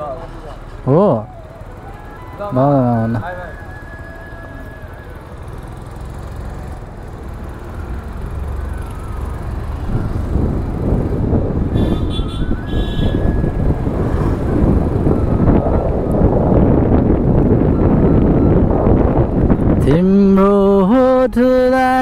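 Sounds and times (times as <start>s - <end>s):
scooter engine hum: 0.0s - 22.0s
wind rushing over microphone: 4.7s - 22.0s.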